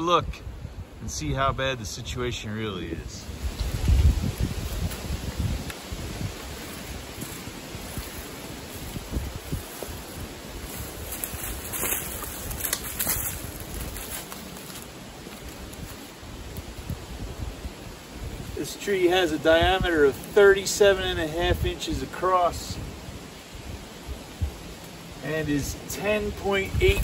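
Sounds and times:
wind on microphone: 0.0 - 14.3, 15.0 - 24.8, 25.5 - 27.0
footsteps crunching dry leaves: 3.2 - 17.8.

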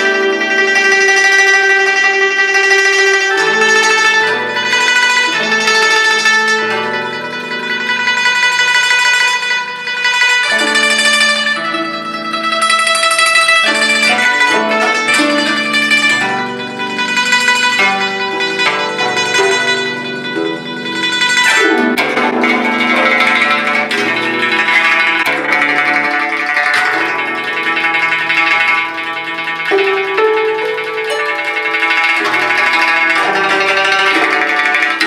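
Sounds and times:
zither plucked solo: 0.0 - 35.0.

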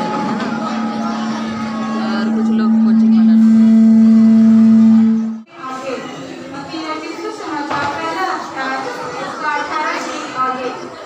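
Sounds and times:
loud steady low tone: 0.0 - 5.5
voices in a large hall: 0.0 - 11.0.

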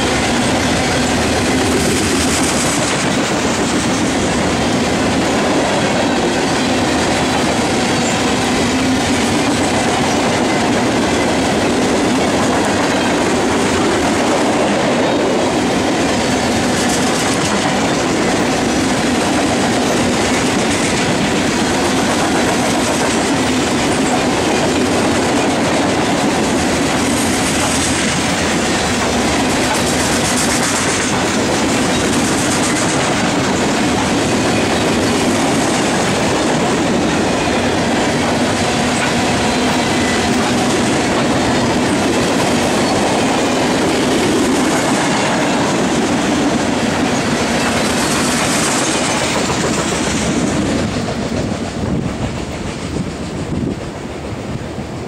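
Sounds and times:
train wheels rolling on rails: 0.0 - 55.0.

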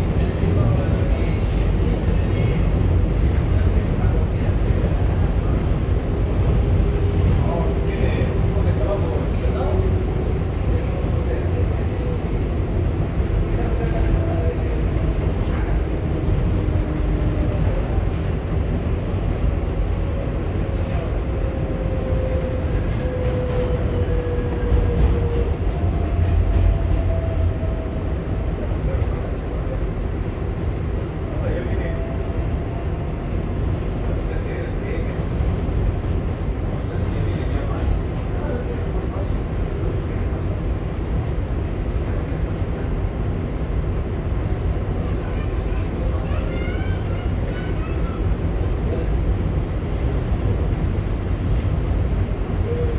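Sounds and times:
passing train: 0.0 - 52.9
train wheels rumbling on rail: 0.0 - 52.9.

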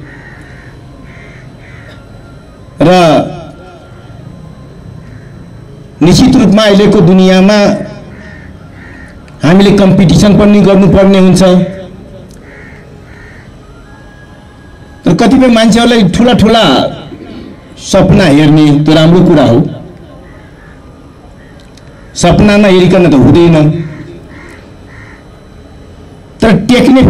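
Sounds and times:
bird harsh cawing: 0.0 - 2.6, 4.9 - 5.8, 7.8 - 10.3, 12.3 - 15.2, 20.1 - 22.7, 23.5 - 26.0
faint background noise: 0.0 - 27.0
low background noise: 0.0 - 27.0.

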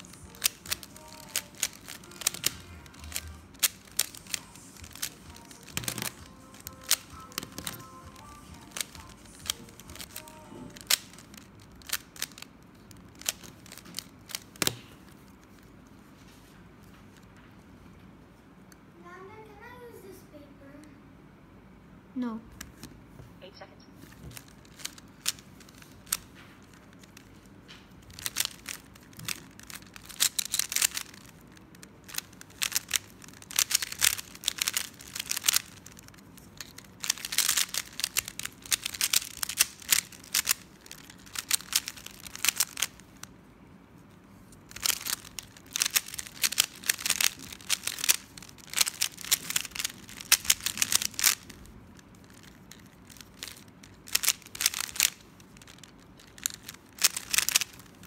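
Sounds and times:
puzzle cube plastic clicking: 0.0 - 15.8, 24.0 - 43.3, 44.6 - 58.0.

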